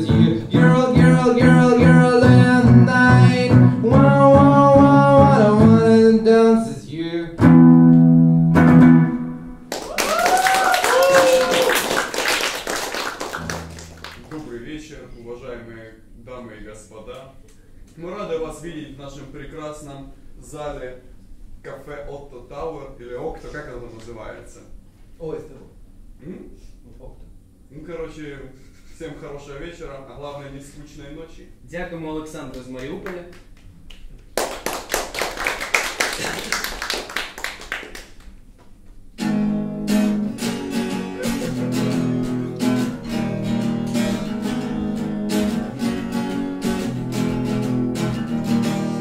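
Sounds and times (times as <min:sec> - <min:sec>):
audience applauding: 0:09.7 - 0:14.5, 0:32.6 - 0:38.4.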